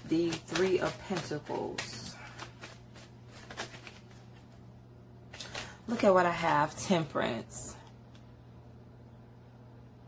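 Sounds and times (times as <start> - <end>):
cards being shuffled: 0.0 - 4.6, 5.3 - 6.8.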